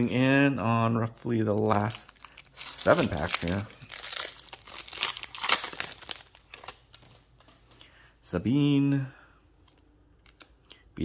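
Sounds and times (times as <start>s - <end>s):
foil wrapper crinkling: 0.0s - 7.5s.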